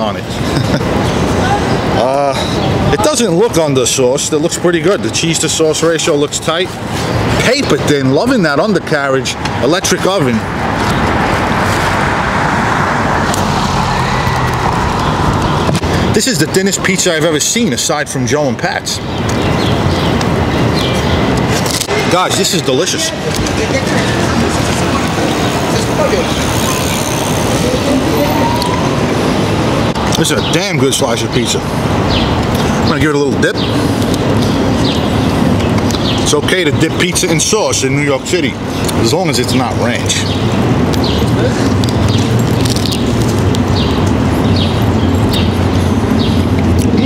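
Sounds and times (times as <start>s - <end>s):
road noise: 0.0s - 47.0s
street traffic: 0.0s - 47.0s
engine hum: 9.4s - 17.0s.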